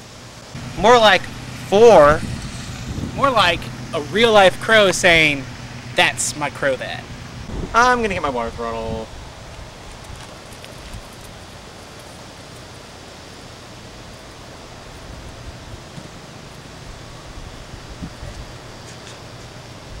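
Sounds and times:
rustling leaves: 0:00.0 - 0:20.0
wind: 0:00.0 - 0:20.0.

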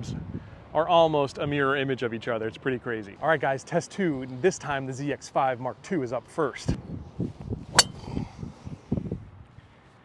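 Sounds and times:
wind rumbling on microphone: 0:00.0 - 0:00.7, 0:06.6 - 0:09.7
golf club striking ball: 0:07.7 - 0:08.2.

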